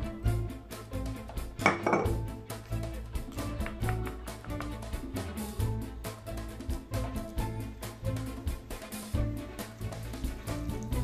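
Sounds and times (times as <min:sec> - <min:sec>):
background music with beat: 0:00.0 - 0:11.0
glass labware clinking: 0:01.6 - 0:02.2.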